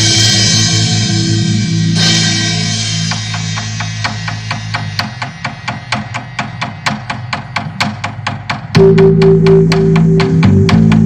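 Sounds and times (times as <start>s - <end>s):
held low tone: 8.8s - 11.0s.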